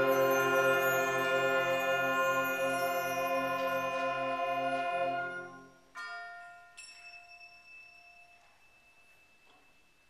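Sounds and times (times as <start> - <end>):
high bell-like percussion stroke: 0.0 - 10.0.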